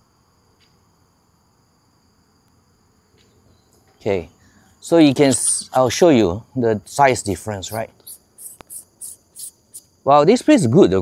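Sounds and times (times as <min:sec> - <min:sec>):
insects chirping: 0:00.0 - 0:11.0
sharp click: 0:07.7 - 0:08.9.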